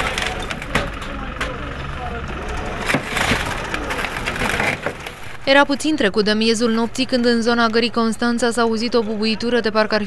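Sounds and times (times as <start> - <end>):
faint distant voices: 0.0 - 5.3.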